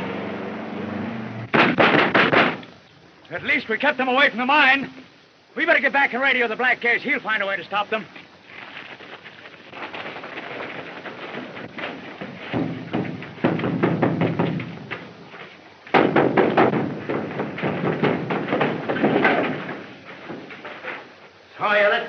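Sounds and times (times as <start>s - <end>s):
thuds and crashes: 1.5s - 2.8s, 9.7s - 21.2s
scuffling: 8.0s - 21.5s.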